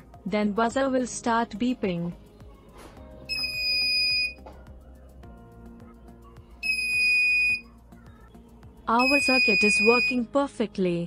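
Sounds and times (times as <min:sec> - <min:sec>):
high-pitched alarm beeps: 0:03.3 - 0:04.4, 0:06.6 - 0:07.7, 0:09.0 - 0:10.2.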